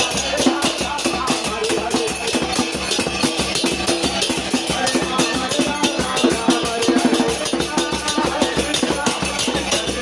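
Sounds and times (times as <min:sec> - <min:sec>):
drumming: 0:00.0 - 0:10.0
jingling hand percussion: 0:00.0 - 0:10.0
voices singing: 0:00.0 - 0:10.0.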